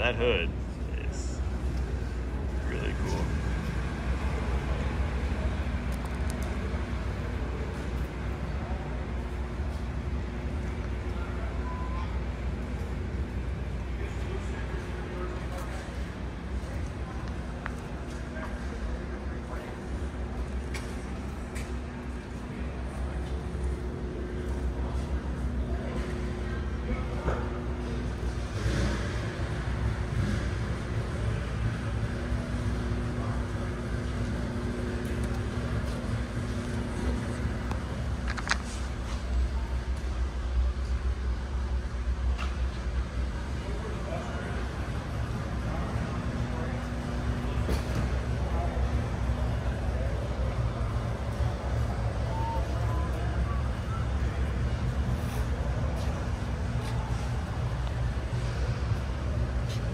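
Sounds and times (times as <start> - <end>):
car engine idling: 0.0 - 59.9
low hall rumble: 0.0 - 59.9.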